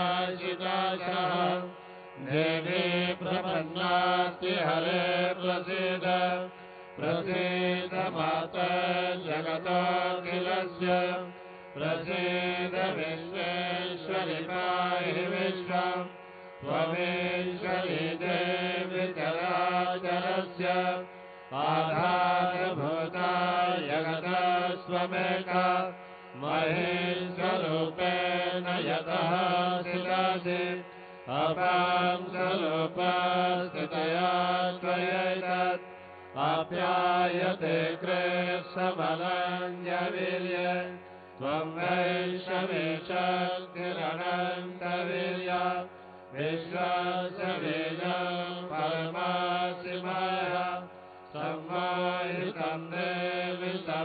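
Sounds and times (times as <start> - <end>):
person chanting melodically: 0.0 - 54.0.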